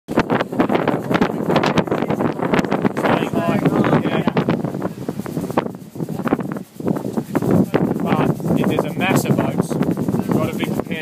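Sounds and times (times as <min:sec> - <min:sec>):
water rushing past hull: 0:00.1 - 0:11.0
wind on microphone: 0:00.1 - 0:11.0
indistinct voices talking: 0:00.2 - 0:11.0.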